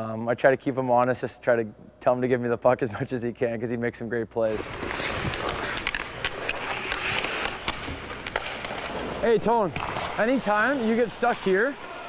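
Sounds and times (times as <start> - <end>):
skates scraping on ice: 4.5 - 12.0
hockey sticks and puck clacking: 4.6 - 12.0.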